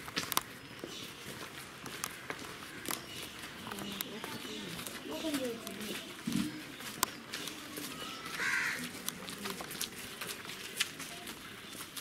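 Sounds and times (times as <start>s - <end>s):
crow cawing: 8.4s - 8.9s.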